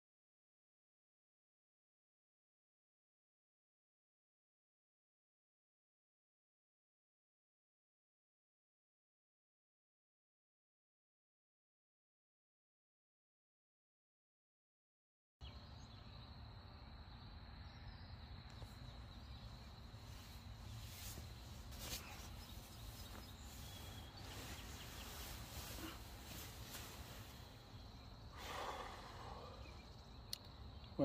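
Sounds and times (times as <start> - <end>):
high insect drone: 15.4 - 31.0.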